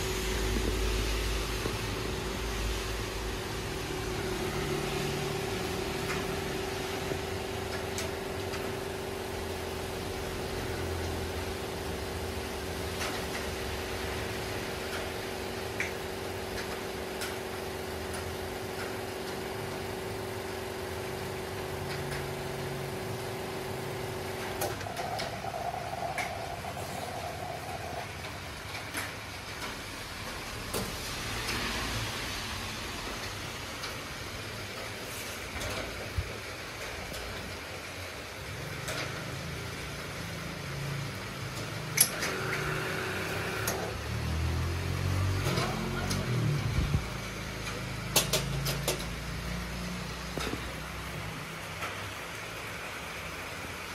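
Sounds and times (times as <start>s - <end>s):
espresso machine pump humming: 0.0s - 28.7s, 39.4s - 51.6s
portafilter clicks and knocks: 47.6s - 49.2s.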